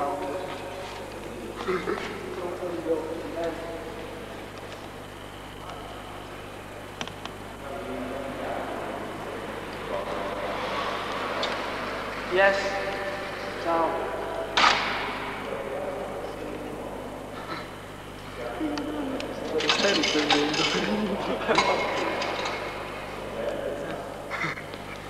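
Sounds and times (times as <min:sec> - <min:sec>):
indistinct voices talking: 0:00.0 - 0:25.0
steady low hum: 0:00.0 - 0:25.0.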